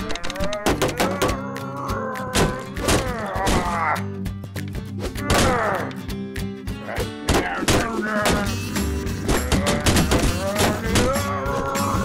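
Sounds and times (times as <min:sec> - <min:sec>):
background music: 0:00.0 - 0:12.0
cartoon character angry growling cry: 0:00.2 - 0:04.1, 0:05.2 - 0:05.9, 0:09.3 - 0:12.0.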